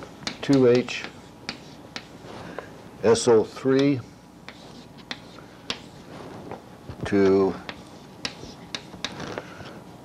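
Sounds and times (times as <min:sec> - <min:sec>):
chalk tapping on blackboard: 0:00.2 - 0:02.7, 0:03.7 - 0:06.0, 0:07.2 - 0:09.2.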